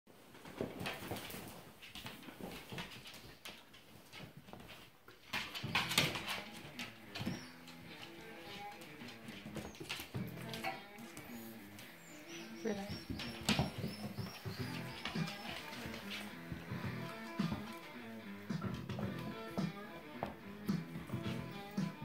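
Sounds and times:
paws clicking on tile floor: 0.2 - 22.0
music: 5.3 - 22.0
dog vocal sounds: 10.4 - 17.2.

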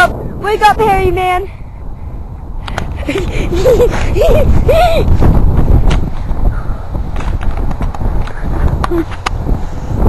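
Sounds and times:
camera handling rumble: 5.1 - 6.4, 7.1 - 9.5.

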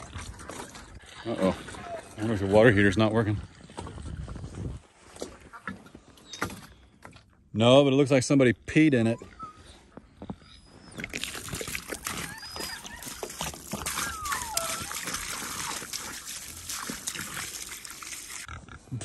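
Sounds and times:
water pouring and splashing: 0.0 - 5.9, 11.0 - 18.5.

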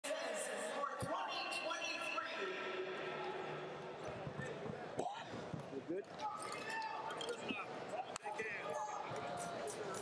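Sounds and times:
many voices talking: 0.0 - 10.0.

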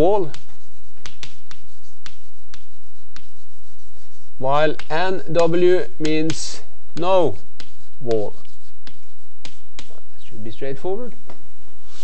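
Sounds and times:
chalk strokes on chalkboard: 0.0 - 12.0.

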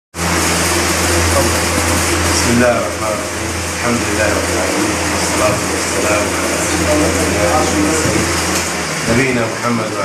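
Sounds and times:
low machine hum: 0.2 - 10.0.

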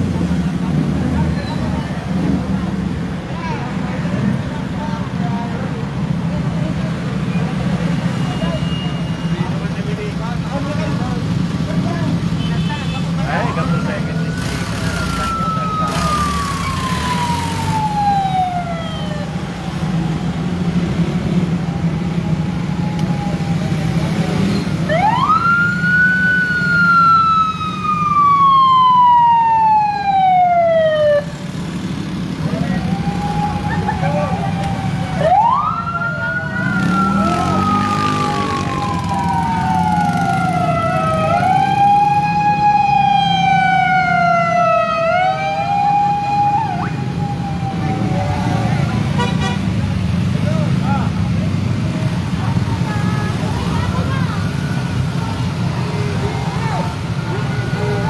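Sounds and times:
vehicle engines rumbling: 0.0 - 58.0
vehicle sirens wailing: 0.0 - 58.0.

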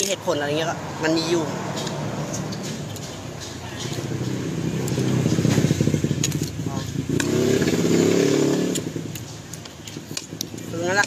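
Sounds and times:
motorcycle engine passing: 0.8 - 9.2.

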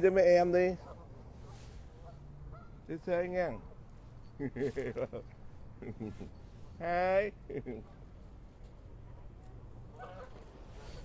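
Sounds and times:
low steady background noise: 0.0 - 11.0
distant geese honking: 0.7 - 4.0, 9.8 - 11.0.

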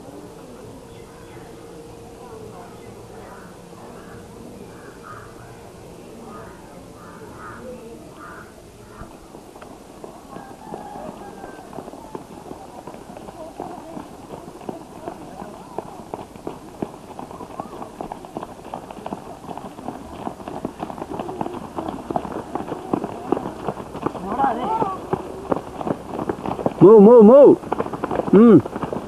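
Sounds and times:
people running footsteps: 6.1 - 29.0.

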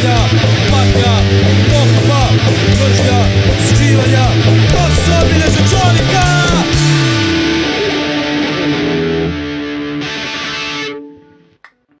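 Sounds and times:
distorted electric guitar: 0.0 - 11.9.

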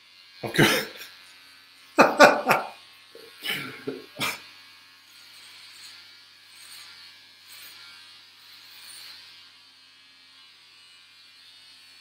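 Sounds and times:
man laughing: 0.5 - 1.1, 2.0 - 4.5.

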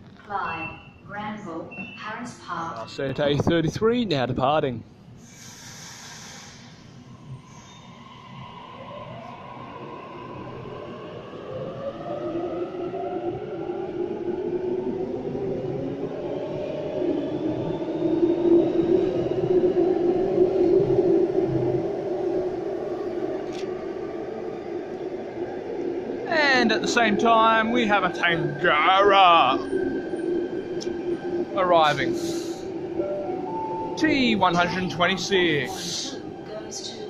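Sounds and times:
train running noise: 26.3 - 37.0.

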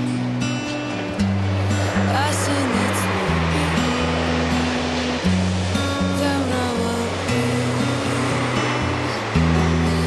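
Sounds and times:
background music with bass notes: 0.0 - 10.0
sea surf: 0.0 - 10.0.

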